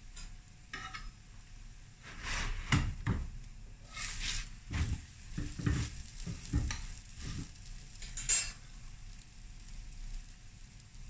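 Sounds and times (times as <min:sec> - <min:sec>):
flatbread sizzling on griddle: 0:00.0 - 0:11.0.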